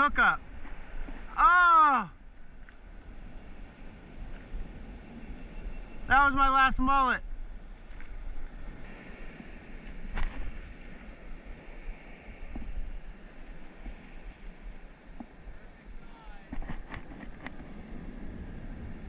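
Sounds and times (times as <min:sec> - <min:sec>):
wind rumbling on microphone: 0:00.0 - 0:19.0.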